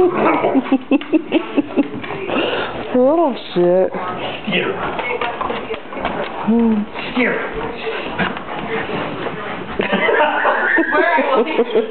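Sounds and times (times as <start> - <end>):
dogs scuffling on wooden floor: 0.6 - 11.9.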